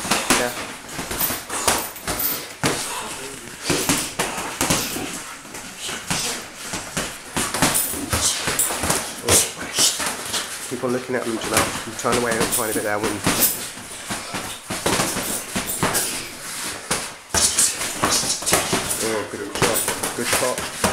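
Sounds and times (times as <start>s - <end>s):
boxing gloves punching thuds: 0.0s - 10.6s, 11.3s - 20.9s.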